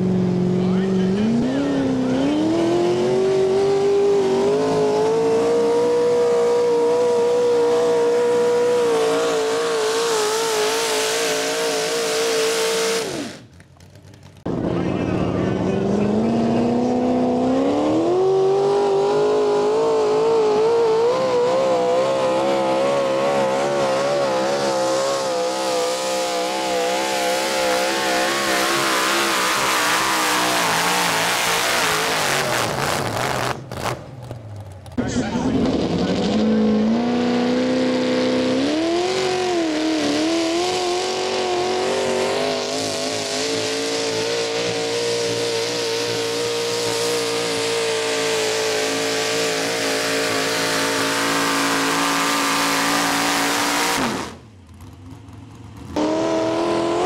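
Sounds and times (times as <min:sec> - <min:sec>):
tractor engine at full throttle: 0:00.0 - 0:57.0.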